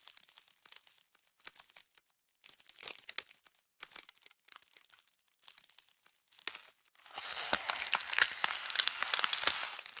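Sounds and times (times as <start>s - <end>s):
dense rustling and crackling: 4.5s - 10.0s.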